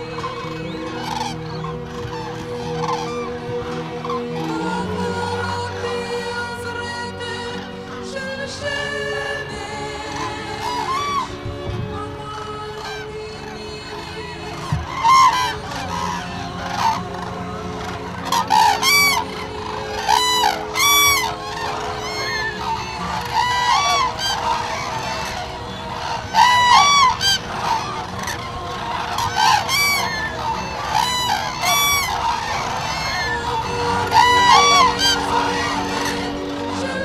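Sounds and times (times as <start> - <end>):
cranes trumpeting: 0.0 - 37.0.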